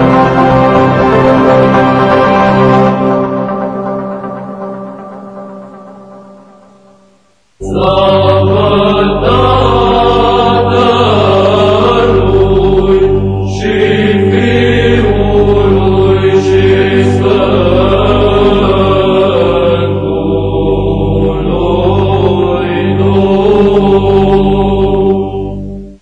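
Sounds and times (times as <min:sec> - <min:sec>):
chanted vocal music: 0:00.0 - 0:26.0
low drone: 0:00.0 - 0:26.0.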